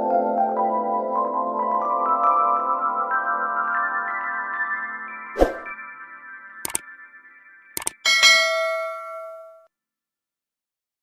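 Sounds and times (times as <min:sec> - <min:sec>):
notification bell ding: 0:07.8 - 0:09.7.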